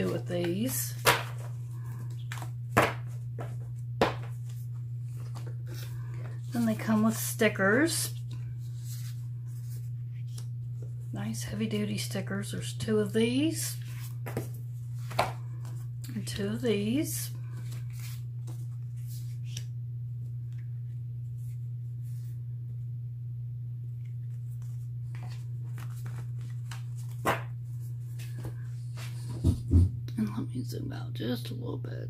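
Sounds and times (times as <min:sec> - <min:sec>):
low hum: 0:00.0 - 0:32.0
paper rustling: 0:08.1 - 0:11.0, 0:24.2 - 0:29.2.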